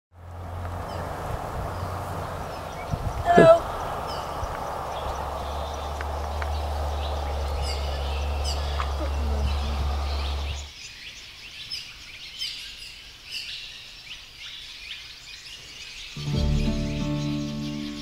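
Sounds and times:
steady low rumble: 0.2 - 10.7
small birds chirping: 0.2 - 18.0.

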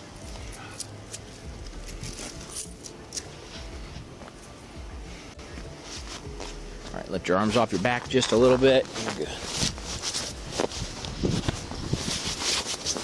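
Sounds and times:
jacket fabric rustling: 0.0 - 13.0.

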